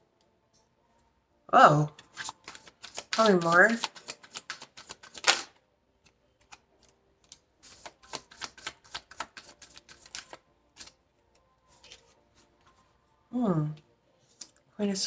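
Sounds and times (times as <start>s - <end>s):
cards being shuffled by hand: 2.0s - 11.0s, 11.7s - 12.5s.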